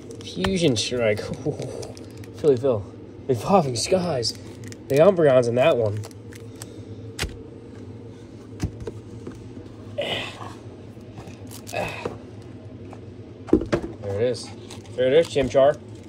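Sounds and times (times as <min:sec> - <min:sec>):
steady low hum: 0:00.0 - 0:16.0
foil crinkling: 0:00.1 - 0:02.6, 0:04.2 - 0:07.4, 0:11.3 - 0:11.9, 0:14.5 - 0:16.0.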